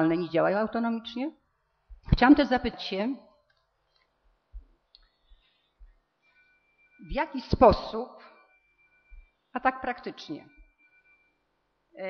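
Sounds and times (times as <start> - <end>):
woman's voice: 0.0 - 1.4, 2.1 - 3.2, 7.1 - 8.3, 9.6 - 10.5.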